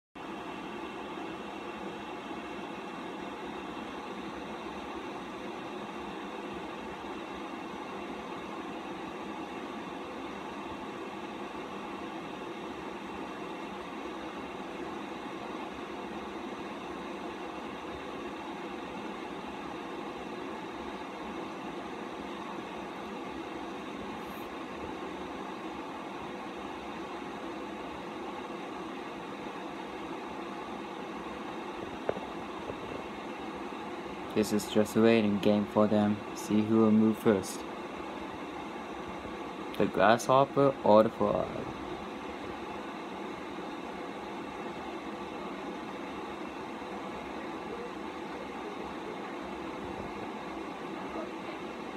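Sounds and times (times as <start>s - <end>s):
mechanical hum: 0.1s - 51.9s.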